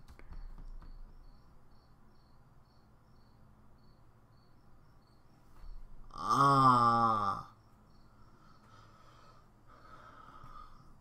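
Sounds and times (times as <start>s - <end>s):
insect chirping: 0.3s - 11.0s.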